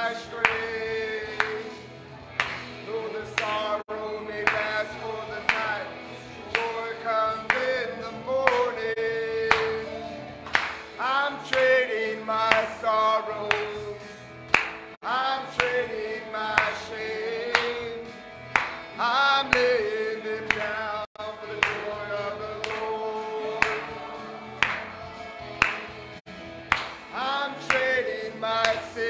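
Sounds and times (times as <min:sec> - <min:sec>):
band accompaniment: 0:00.0 - 0:29.0
voices singing worship song: 0:00.0 - 0:29.0.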